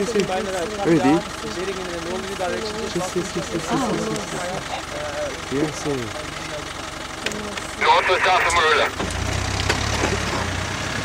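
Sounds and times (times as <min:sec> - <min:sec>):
quiet voices: 0:00.0 - 0:09.0
vehicle engine idling: 0:00.0 - 0:11.0
loud voice: 0:07.8 - 0:08.9.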